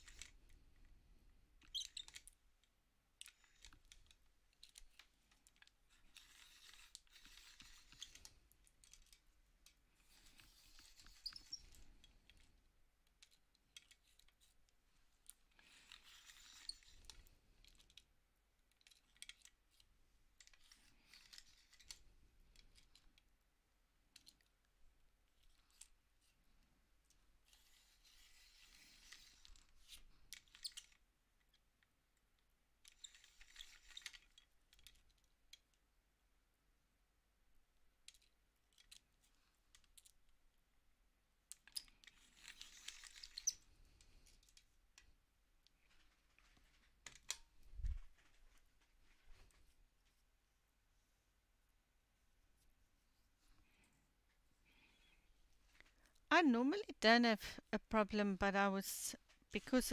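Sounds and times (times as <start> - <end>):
small clicks: 0.0 - 0.9, 1.6 - 23.3, 24.0 - 35.8, 38.0 - 40.4, 41.4 - 49.6
pencil sharpener scraping: 6.0 - 8.2, 15.6 - 16.9.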